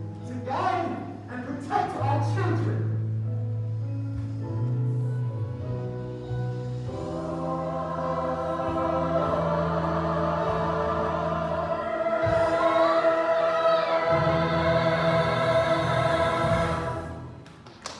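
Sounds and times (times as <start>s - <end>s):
musical accompaniment: 0.0s - 17.9s
choir singing held notes: 6.6s - 17.4s.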